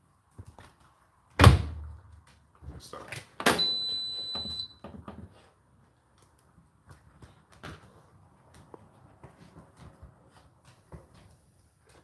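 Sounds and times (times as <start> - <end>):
high electronic beep: 3.6 - 4.8.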